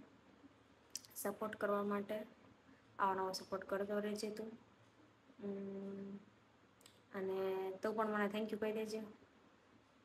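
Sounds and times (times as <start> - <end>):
woman humming: 5.4 - 6.3.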